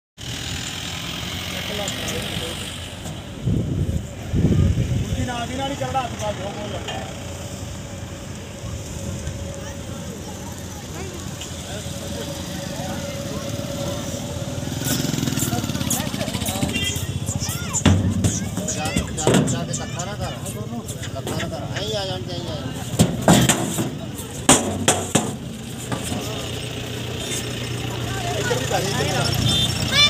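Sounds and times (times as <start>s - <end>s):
vehicle engine idling: 0.2s - 30.0s
motorcycle engine passing: 10.4s - 19.7s.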